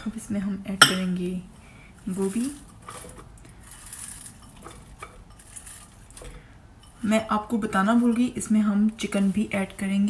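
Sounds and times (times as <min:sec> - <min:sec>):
ceramic bowl clinking on glass bowl: 0:00.8 - 0:01.2.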